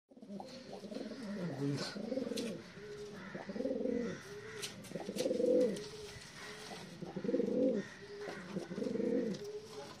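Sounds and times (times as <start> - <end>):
pigeon cooing: 0.1 - 10.0.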